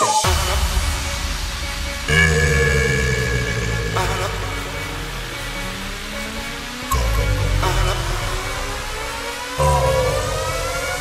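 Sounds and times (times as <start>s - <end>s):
electronic dance music: 0.0s - 11.0s
steady low bass: 0.2s - 11.0s
held synth tone: 2.1s - 5.4s.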